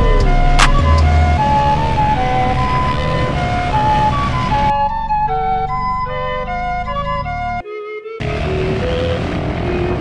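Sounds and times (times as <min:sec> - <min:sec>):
music with flute-like melody: 0:00.0 - 0:09.9.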